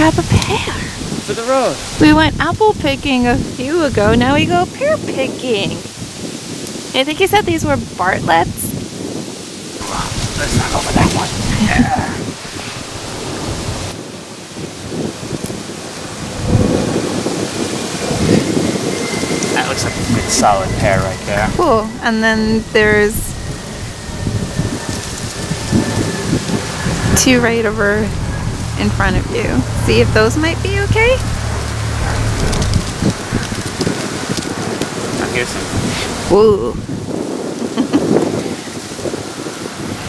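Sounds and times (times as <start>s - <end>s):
rumbling buffets on microphone: 0.0s - 40.0s
leaves and branches rustling: 3.6s - 40.0s
leaves and twigs rustling: 23.3s - 28.8s, 31.2s - 36.3s.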